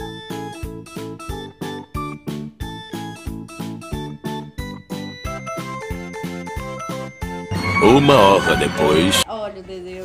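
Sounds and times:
light background music: 0:00.0 - 0:10.0
narrator speaking: 0:07.5 - 0:09.2.

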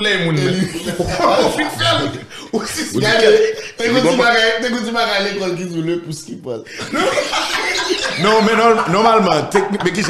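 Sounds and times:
men laughing: 0:00.1 - 0:04.4, 0:06.7 - 0:10.0.

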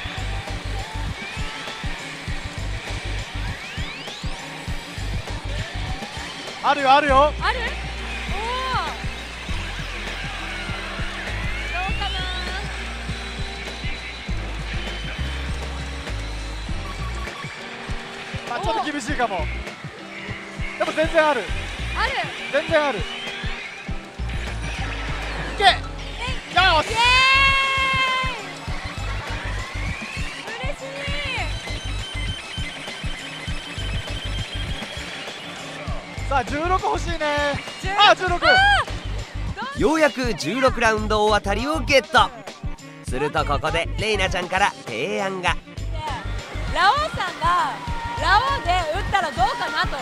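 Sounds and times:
rising electronic sweep: 0:00.0 - 0:39.5
electronic music and sound effects: 0:00.0 - 0:42.4.

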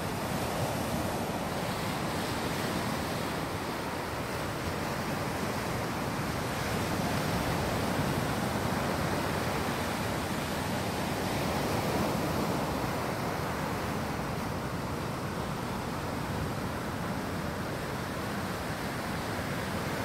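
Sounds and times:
ocean surf on sandy beach: 0:00.0 - 0:20.0.

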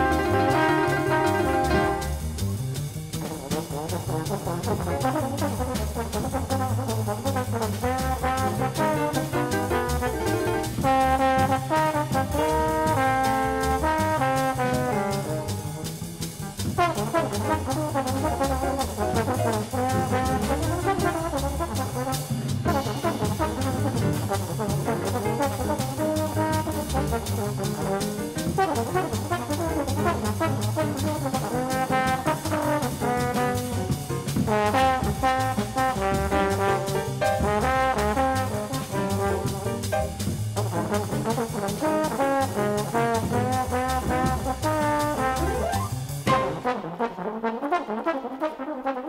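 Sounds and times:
trumpet: 0:00.0 - 0:02.5, 0:03.2 - 0:49.0
bass: 0:00.0 - 0:46.9
drums: 0:00.0 - 0:48.0
trombone: 0:00.0 - 0:49.0.

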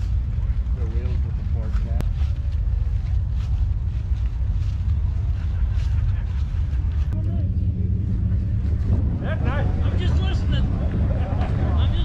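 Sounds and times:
steady low rumble: 0:00.0 - 0:12.0.

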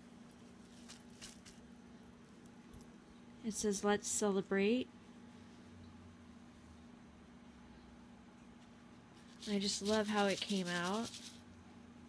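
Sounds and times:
faint steady hum: 0:00.0 - 0:12.0
soft rustles: 0:00.1 - 0:01.7.

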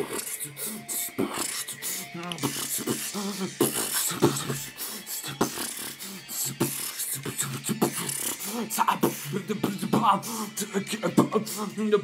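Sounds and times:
hummed vocal notes: 0:00.0 - 0:12.0
person beatboxing: 0:00.0 - 0:12.0.

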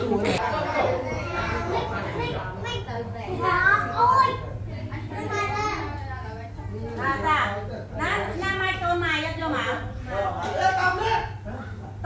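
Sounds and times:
adult voices: 0:00.0 - 0:12.0
children talking and calling out: 0:00.2 - 0:06.3.

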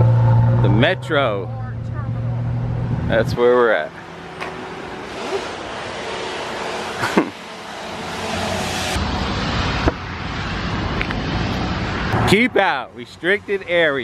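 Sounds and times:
outdoor rushing noise: 0:00.0 - 0:14.0.

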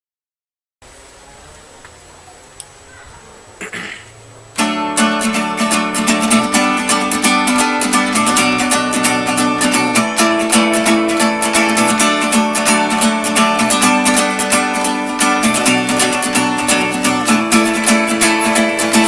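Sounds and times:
acoustic guitar strumming: 0:03.6 - 0:19.0.

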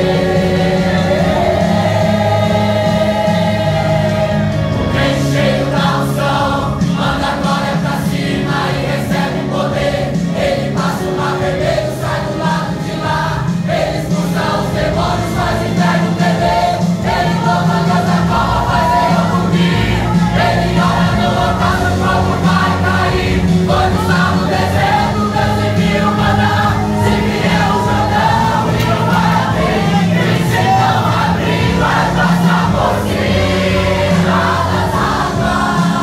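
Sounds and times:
congregation singing worship song: 0:00.0 - 0:36.0
instrumental backing with bass: 0:00.0 - 0:36.0.

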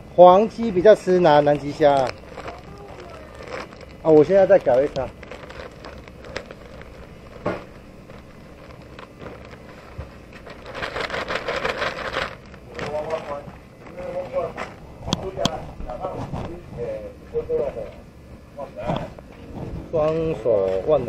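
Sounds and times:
plastic bag crinkling: 0:00.8 - 0:15.6
faint voice: 0:02.4 - 0:03.7.

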